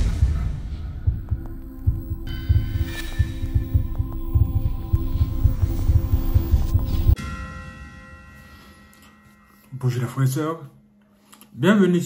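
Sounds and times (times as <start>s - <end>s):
deep throbbing bass pulses: 0.0s - 7.2s
low hum: 0.0s - 9.8s
sustained tones: 1.0s - 10.3s.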